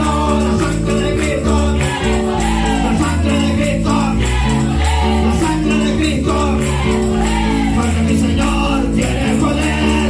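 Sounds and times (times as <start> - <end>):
guitar: 0.0 - 10.0
keyboard: 0.0 - 10.0
man singing into a microphone: 0.0 - 10.0
rattling percussion beat: 0.0 - 10.0.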